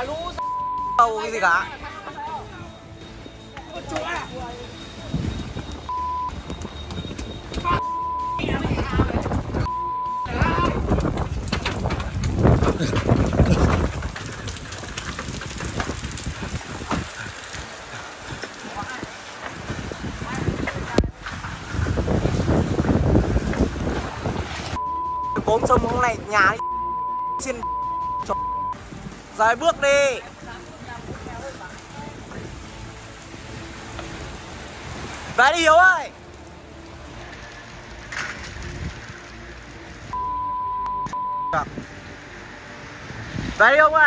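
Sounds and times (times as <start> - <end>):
censor bleep: 0.4 - 1.2, 5.9 - 8.7, 9.6 - 10.7, 24.8 - 25.6, 26.6 - 28.8, 40.2 - 41.7
steady high beep: 0.4 - 1.2, 4.3 - 8.6, 9.7 - 10.5, 24.8 - 25.6, 26.6 - 28.8, 40.2 - 41.6
rain hissing: 4.1 - 26.8, 27.4 - 40.7, 41.5 - 44.0
wind buffeting microphone: 8.4 - 24.8, 28.8 - 35.4, 43.0 - 43.7.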